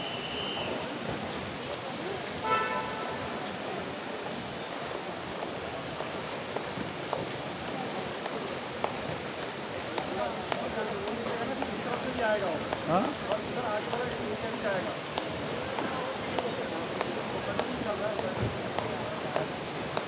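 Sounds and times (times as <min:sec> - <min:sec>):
onlookers' voices: 0:00.0 - 0:20.0.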